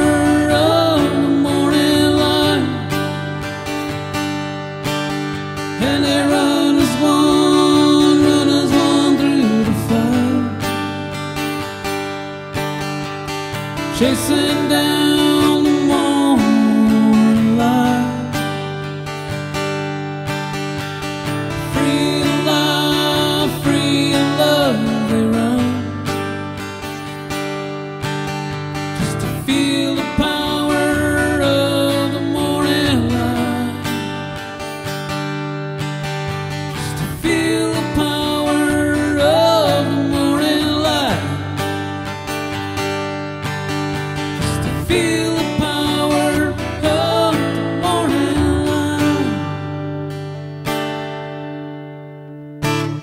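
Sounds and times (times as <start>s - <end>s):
man singing: 0.0s - 3.5s, 5.6s - 11.1s, 13.7s - 18.8s, 21.4s - 26.3s, 29.0s - 34.5s, 36.7s - 41.9s, 44.3s - 49.9s
guitar strummed: 0.0s - 53.0s.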